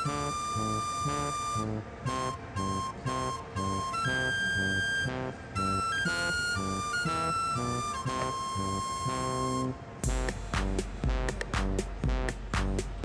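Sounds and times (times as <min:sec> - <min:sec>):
melody of held high notes: 0:00.0 - 0:11.8
repeating bass line: 0:00.0 - 0:13.0.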